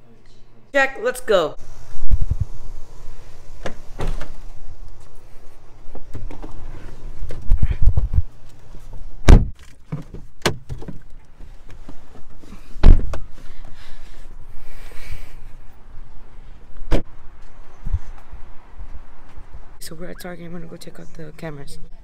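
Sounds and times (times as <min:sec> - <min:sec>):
microphone handling noise: 0:01.9 - 0:05.2, 0:05.8 - 0:09.6
car door thunks: 0:09.2 - 0:11.0.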